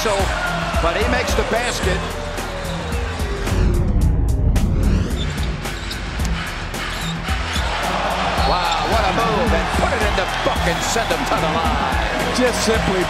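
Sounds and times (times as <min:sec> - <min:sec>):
music with heavy bass beat: 0:00.5 - 0:13.0.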